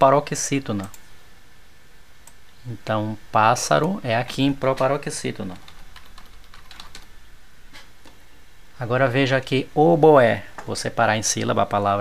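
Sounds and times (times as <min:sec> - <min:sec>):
keyboard typing: 0:04.7 - 0:07.1.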